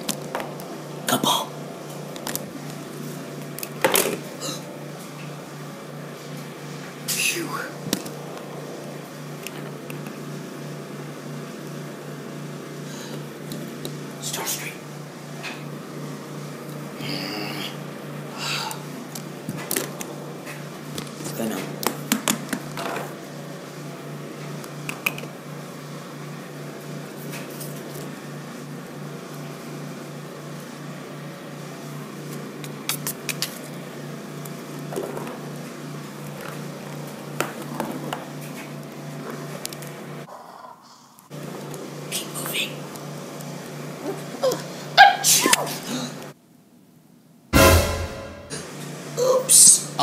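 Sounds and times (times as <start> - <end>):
low hum: 47.6 - 48.8.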